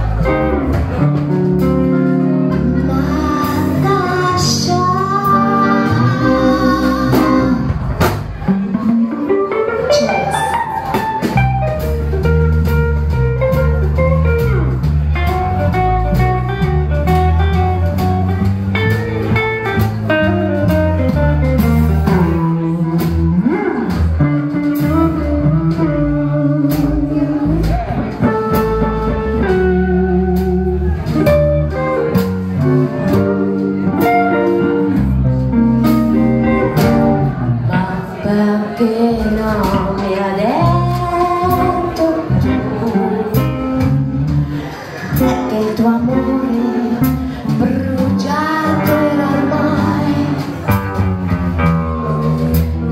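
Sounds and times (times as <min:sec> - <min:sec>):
drum kit: 0:00.0 - 0:52.9
electric guitar lead: 0:00.0 - 0:52.9
upright double bass: 0:00.0 - 0:52.9.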